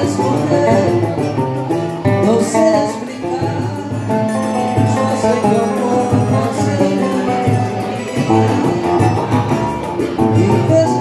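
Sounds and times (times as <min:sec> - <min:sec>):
acoustic guitar: 0:00.0 - 0:11.0
cavaquinho plucked and strummed: 0:00.0 - 0:11.0
person singing: 0:00.0 - 0:11.0.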